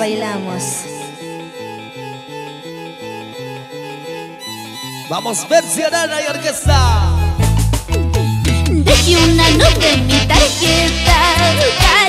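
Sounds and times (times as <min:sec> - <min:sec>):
instrumental band music: 0:00.6 - 0:12.0.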